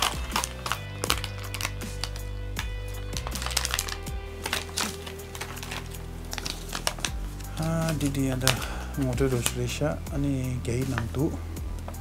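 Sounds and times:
paper sheet rustling: 0.0s - 9.7s
plastic bag crinkling: 0.0s - 9.8s
background music: 0.0s - 12.0s.

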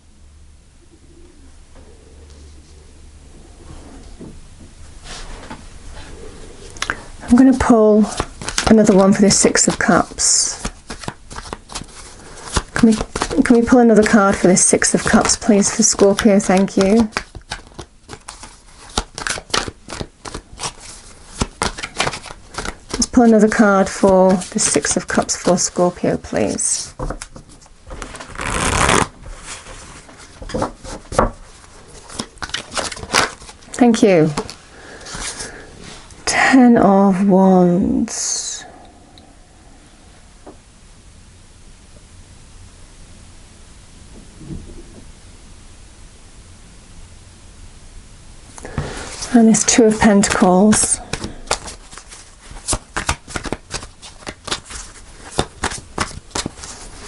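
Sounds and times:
room background hiss: 0.0s - 57.0s
cards being shuffled: 7.6s - 35.6s, 48.6s - 57.0s.

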